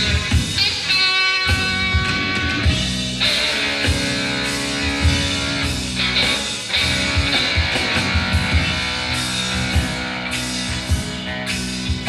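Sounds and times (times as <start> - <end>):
electric guitar lines: 0.0 - 12.0
rock band playing: 0.0 - 12.0
drum hits: 1.6 - 10.1.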